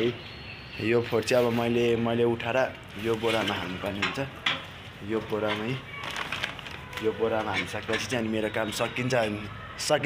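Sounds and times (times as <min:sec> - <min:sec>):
rustling handling noise: 0:02.8 - 0:08.9.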